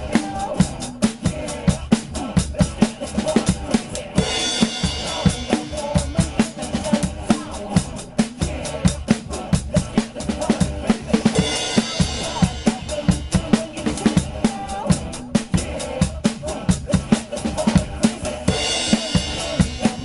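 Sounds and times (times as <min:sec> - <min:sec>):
backing music recording: 0:00.0 - 0:20.0
drum kit playing rock beat: 0:00.0 - 0:20.0.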